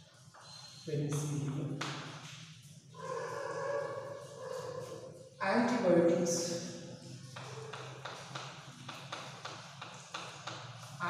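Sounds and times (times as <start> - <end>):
chalk scratching on blackboard: 3.0 - 5.8, 7.0 - 11.0.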